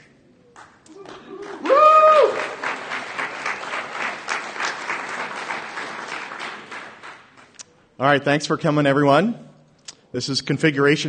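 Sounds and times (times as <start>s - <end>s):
audience applauding: 0.6s - 7.6s
high whoop: 0.9s - 2.8s.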